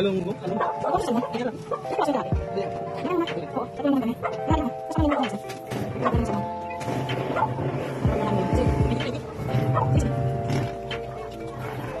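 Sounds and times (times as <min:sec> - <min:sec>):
sustained chords music: 0:00.2 - 0:12.0.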